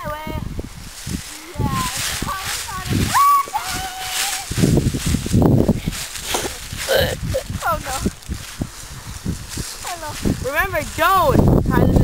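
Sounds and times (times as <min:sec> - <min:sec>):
sled scraping over grass: 0:00.7 - 0:12.0
children shouting and squealing: 0:01.4 - 0:04.7.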